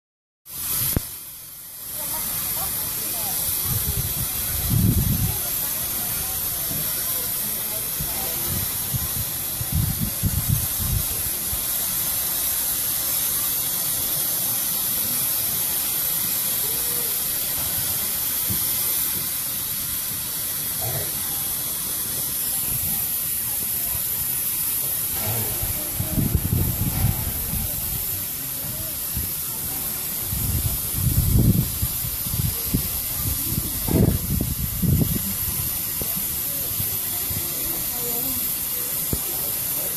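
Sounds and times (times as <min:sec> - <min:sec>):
steam hissing from locomotive: 0:00.4 - 0:39.9
low rumbles: 0:24.2 - 0:33.0.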